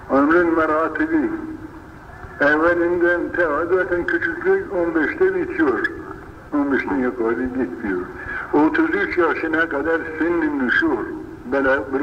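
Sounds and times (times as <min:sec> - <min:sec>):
man talking: 0:00.0 - 0:01.6, 0:02.4 - 0:12.0.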